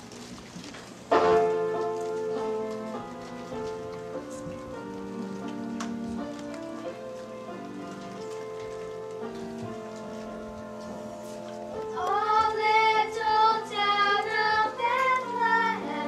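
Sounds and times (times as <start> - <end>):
girls singing a carol: 11.7 - 16.0.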